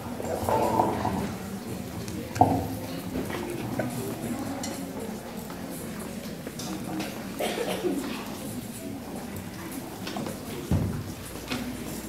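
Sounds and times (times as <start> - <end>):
murmuring voices: 0.0 - 12.0.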